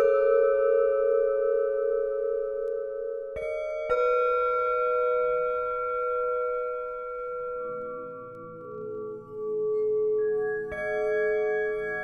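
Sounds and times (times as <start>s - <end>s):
singing bowl ringing: 0.0s - 12.0s.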